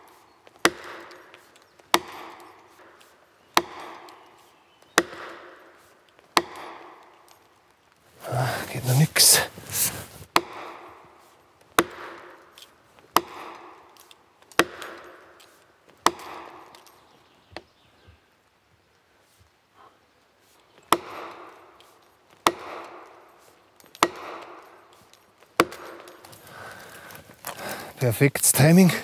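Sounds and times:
axe knocking plastic wedges: 0:14.6 - 0:15.1.

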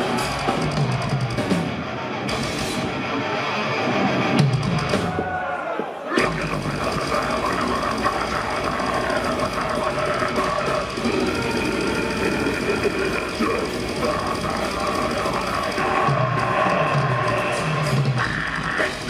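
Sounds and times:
distorted electric guitar: 0:00.0 - 0:05.4, 0:06.1 - 0:19.0
drums: 0:00.0 - 0:19.0.

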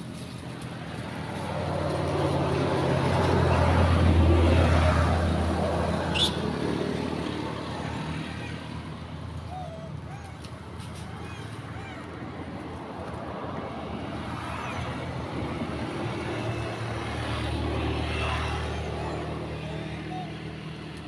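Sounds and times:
vehicle passing by: 0:00.0 - 0:21.0.

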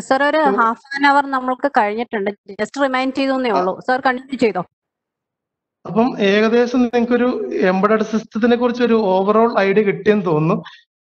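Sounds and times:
person speaking: 0:00.0 - 0:01.6, 0:02.5 - 0:04.7, 0:05.8 - 0:10.9.

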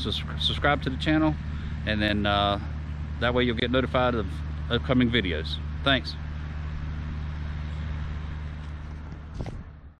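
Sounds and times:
engine running as low drone: 0:00.0 - 0:10.0.

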